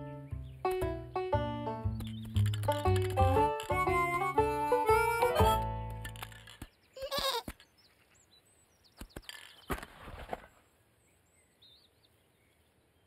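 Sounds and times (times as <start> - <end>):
music: 0.0 - 6.4
bird chirps: 1.8 - 4.3, 6.2 - 9.9, 11.0 - 13.0
brief rattle: 2.0 - 3.8, 5.9 - 6.7
cartoon sheep bleating: 7.0 - 7.5.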